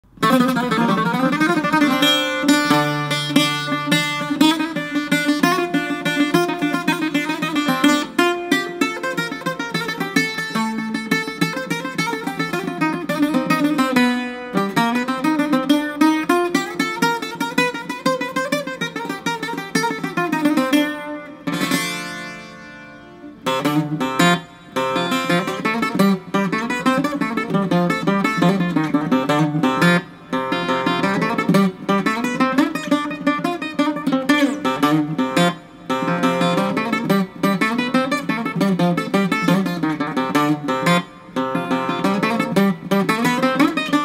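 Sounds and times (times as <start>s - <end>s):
bouzouki playing fast runs: 0.0s - 44.0s.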